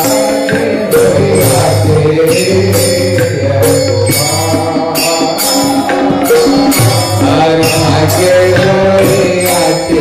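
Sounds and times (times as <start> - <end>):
held instrumental tones: 0.0 - 10.0.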